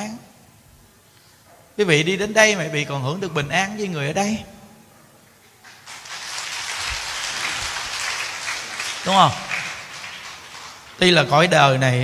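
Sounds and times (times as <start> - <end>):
audience applauding: 5.6 - 11.8.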